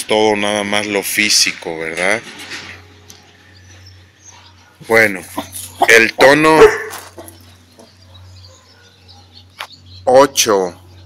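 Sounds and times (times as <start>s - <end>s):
faint bird chirps: 6.9s - 11.0s.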